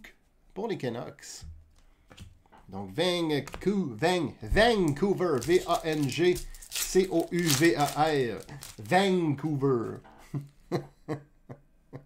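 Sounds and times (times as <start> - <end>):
card pack wrapper crinkling: 4.6 - 10.0.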